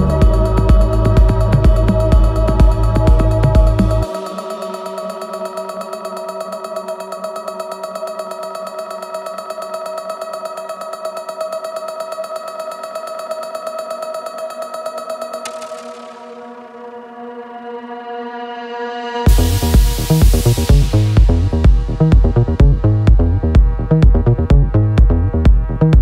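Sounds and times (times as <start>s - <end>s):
pulsing synthesizer chord: 0.0s - 26.0s.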